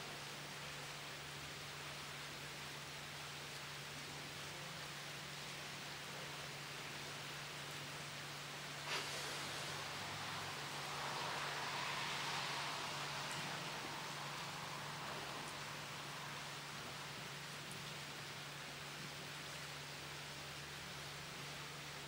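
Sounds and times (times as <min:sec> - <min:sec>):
faint steady hum and hiss: 0:00.0 - 0:22.0
air hissing between balloons: 0:08.8 - 0:16.5.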